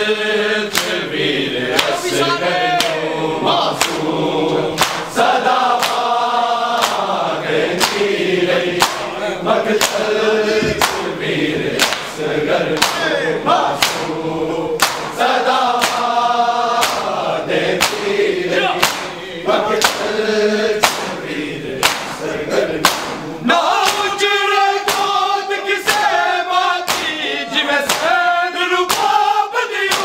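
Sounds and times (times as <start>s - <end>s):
men chanting in unison: 0.0s - 30.0s
hands slapping chests: 0.7s - 1.1s, 1.7s - 2.1s, 2.8s - 3.1s, 3.7s - 8.2s, 8.8s - 9.2s, 9.8s - 13.1s, 13.8s - 14.2s, 14.8s - 17.2s, 17.8s - 20.1s, 20.8s - 21.2s, 21.8s - 24.2s, 24.8s - 25.2s, 25.8s - 26.2s, 26.8s - 28.2s, 28.9s - 29.2s.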